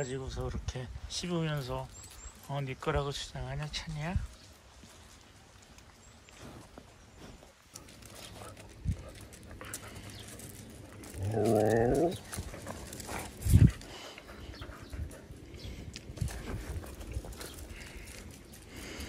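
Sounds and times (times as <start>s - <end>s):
low wavering vocal moan: 11.1s - 12.2s.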